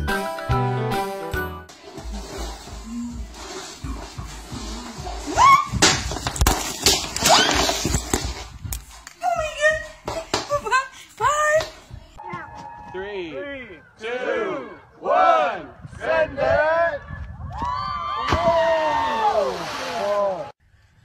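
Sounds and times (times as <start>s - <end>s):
music playing: 0.0s - 5.3s.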